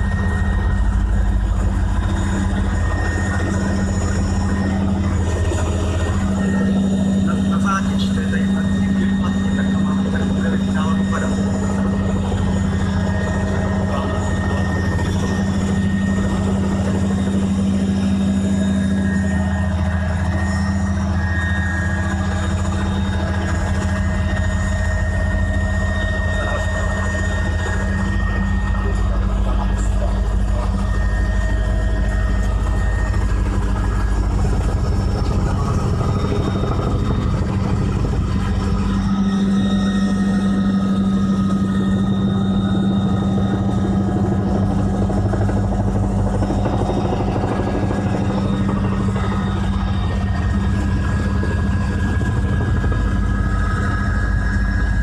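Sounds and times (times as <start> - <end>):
small aircraft engine drone: 0.0 - 55.0.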